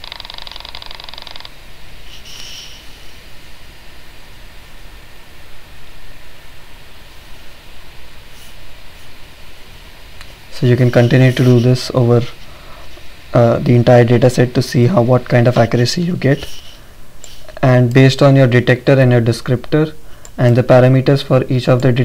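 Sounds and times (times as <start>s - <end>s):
pulsed buzzing: 0.0s - 17.5s
steady background noise: 0.0s - 22.0s
short hiss: 2.1s - 3.2s, 16.4s - 17.6s.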